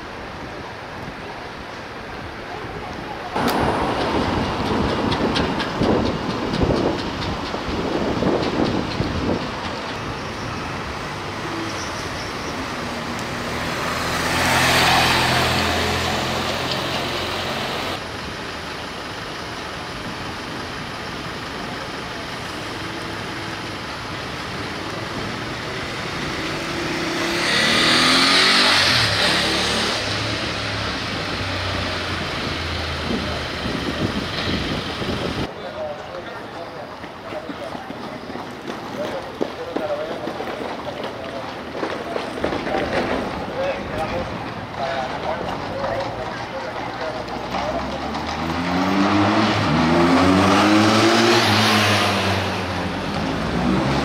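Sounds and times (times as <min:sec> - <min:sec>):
vehicles passing by: 0:00.0 - 0:54.0
engine hum: 0:03.2 - 0:35.5.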